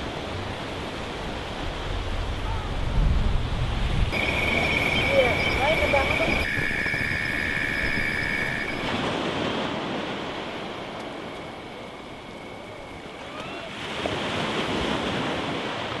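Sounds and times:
waves washing on a beach: 0.0s - 16.0s.

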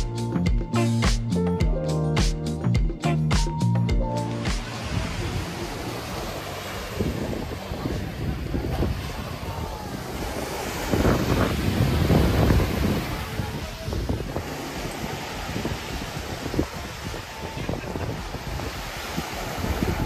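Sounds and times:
surf breaking on beach: 4.4s - 20.0s
wind buffeting microphone: 4.8s - 20.0s.

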